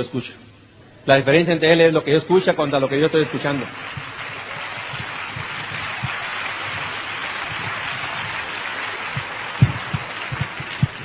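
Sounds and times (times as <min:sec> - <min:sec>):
audience applauding: 0:02.3 - 0:11.0.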